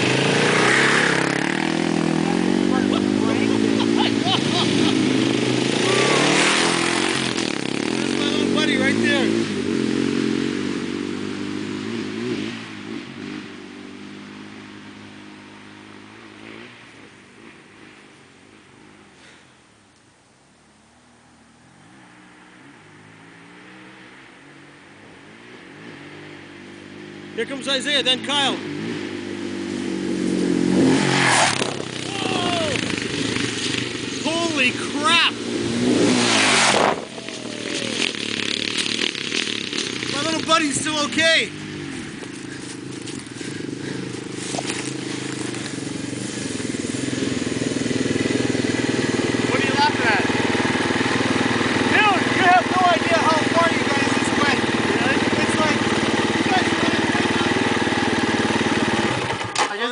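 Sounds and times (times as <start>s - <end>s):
dirt bike engine revving: 0.0s - 19.4s, 21.9s - 59.9s.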